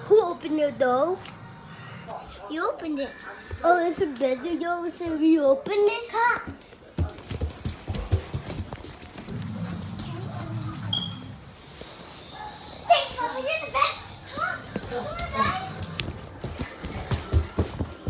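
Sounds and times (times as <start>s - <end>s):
low rumble: 9.3s - 11.4s.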